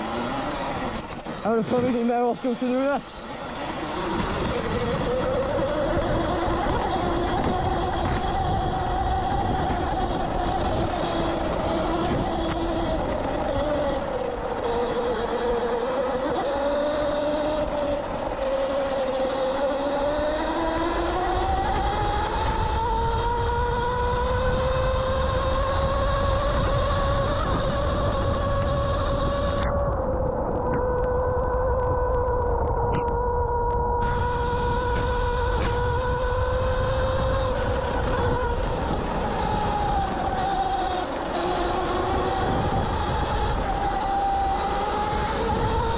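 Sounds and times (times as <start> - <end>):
electric dirt bike motor whining: 0.0 - 45.9
wind and tyres on dirt: 0.0 - 45.9.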